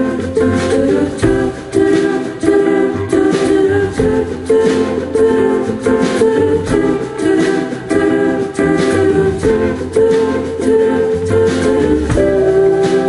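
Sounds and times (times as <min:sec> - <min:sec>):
guitar chords: 0:00.0 - 0:13.0
piano: 0:00.0 - 0:13.0.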